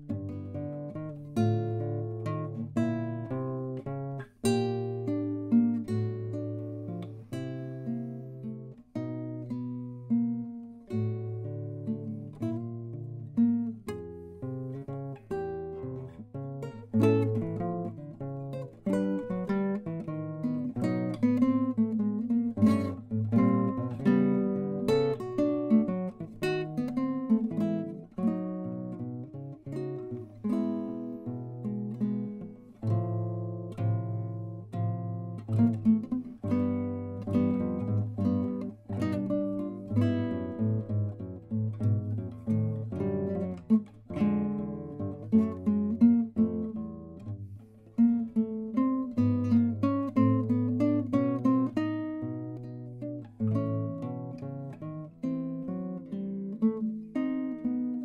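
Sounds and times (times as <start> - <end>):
fingerpicked classical guitar: 0.0 - 58.0.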